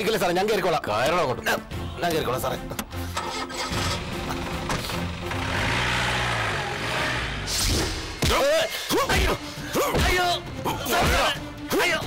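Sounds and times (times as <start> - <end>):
background music: 0.0 - 12.0
jeep engine starting and driving past: 3.2 - 7.5.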